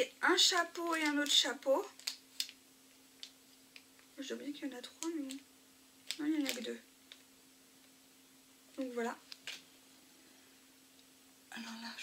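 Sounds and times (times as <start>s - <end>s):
faint steady hum: 0.0s - 12.0s
small packets clicking: 0.5s - 4.1s, 4.8s - 5.4s, 6.0s - 7.3s, 9.2s - 9.6s.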